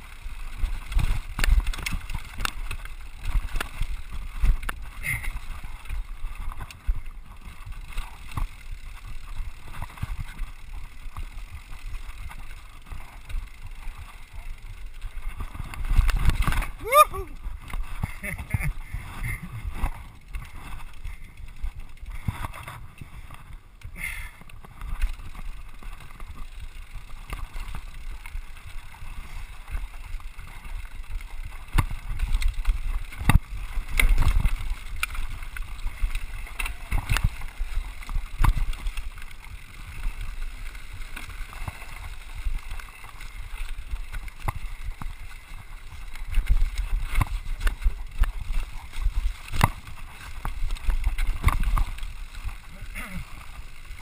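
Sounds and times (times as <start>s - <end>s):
bike knocking and rattling: 0.0s - 54.0s
bike tyres rolling rumble: 0.0s - 54.0s.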